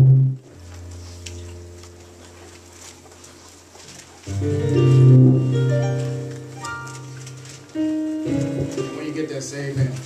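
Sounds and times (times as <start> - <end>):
held low bass note: 0.0 - 2.7
electric keyboard chord: 0.0 - 10.0.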